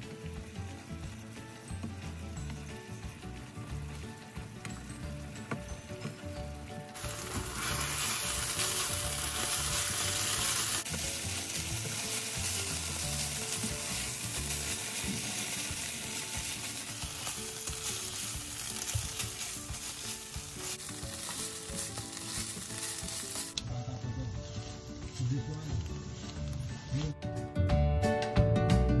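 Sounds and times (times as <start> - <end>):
meat sizzling in oil: 0.0 - 6.3, 6.9 - 27.2
soft background music: 0.0 - 29.0.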